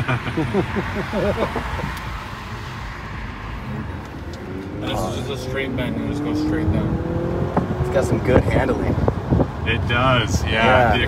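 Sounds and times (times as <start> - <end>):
person laughing: 0.0 - 2.0
road and tyre noise in car: 0.0 - 11.0.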